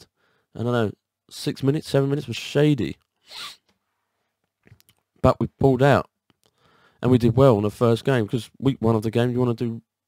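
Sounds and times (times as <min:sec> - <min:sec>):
man speaking: 0:00.6 - 0:03.0, 0:05.2 - 0:06.1, 0:07.0 - 0:09.9
man's quick in-breath: 0:06.5 - 0:07.0.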